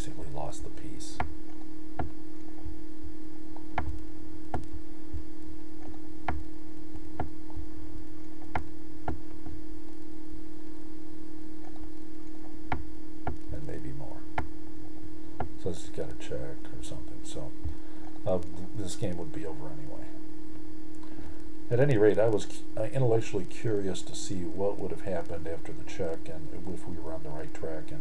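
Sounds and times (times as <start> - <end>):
low electrical hum: 0.0 - 28.0.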